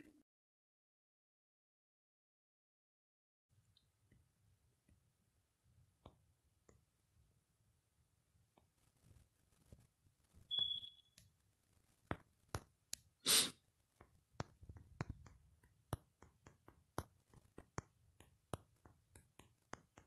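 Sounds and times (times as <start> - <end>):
short high beep: 10.5 - 11.1.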